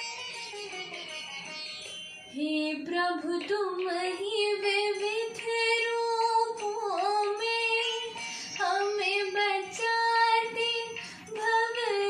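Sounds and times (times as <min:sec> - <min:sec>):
woman singing devotional song: 0:02.3 - 0:12.0.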